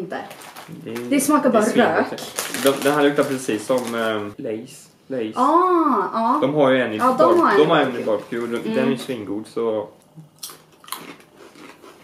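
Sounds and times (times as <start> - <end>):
potato chips crunching: 2.2 - 4.2, 10.4 - 12.0.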